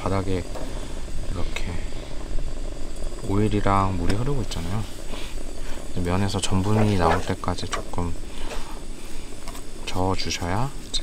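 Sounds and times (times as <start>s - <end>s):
camp stove burner rush: 0.0s - 11.0s
pasta simmering: 0.0s - 11.0s.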